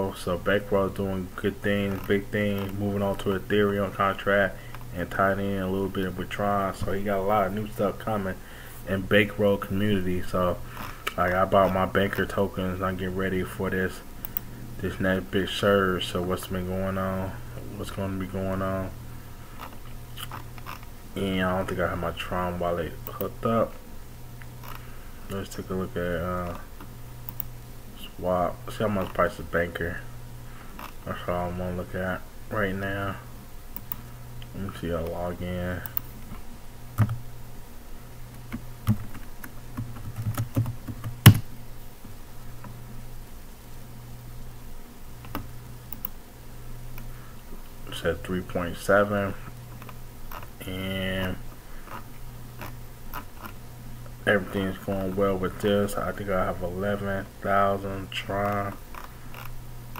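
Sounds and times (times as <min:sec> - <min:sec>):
steady low hum: 0:00.0 - 0:59.9
soft clicks: 0:26.4 - 0:27.5, 0:33.8 - 0:35.2, 0:45.2 - 0:46.2
computer keyboard clicks: 0:38.5 - 0:41.4.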